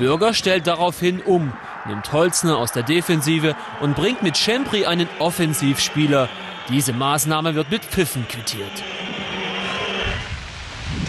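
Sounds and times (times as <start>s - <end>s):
crowd whistling: 0.0s - 10.4s
crowd noise: 0.0s - 10.6s.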